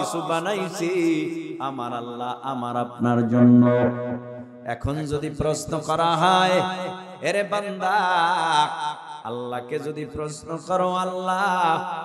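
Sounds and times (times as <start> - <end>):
man chanting through microphones: 0.0 - 12.0.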